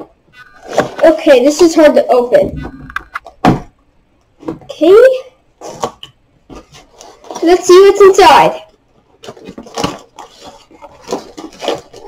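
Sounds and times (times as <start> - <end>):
cardboard box rustling: 5.6 - 7.8, 9.0 - 12.0.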